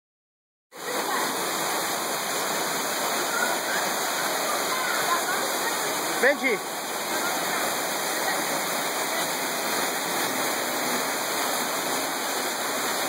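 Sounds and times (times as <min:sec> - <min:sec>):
waterfall rushing onto rocks: 0:00.8 - 0:13.0.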